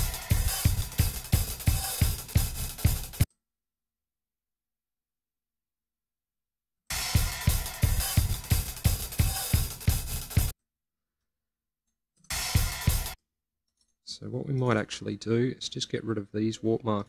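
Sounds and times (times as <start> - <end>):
drum kit beat: 0.0 - 3.3, 6.9 - 10.5, 12.3 - 13.2.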